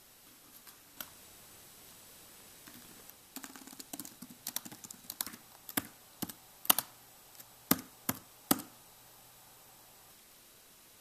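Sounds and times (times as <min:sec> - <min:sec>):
typing on computer keyboard: 0:03.4 - 0:08.7.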